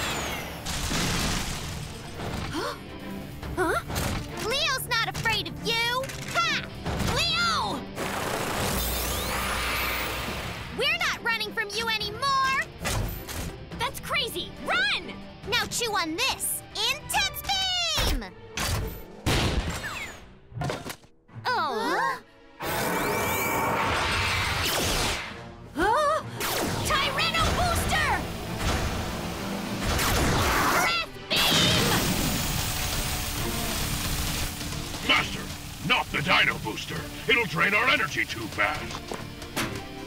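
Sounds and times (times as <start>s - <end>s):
background music: 0.0s - 40.0s
rumbling hissing effect: 31.8s - 37.5s.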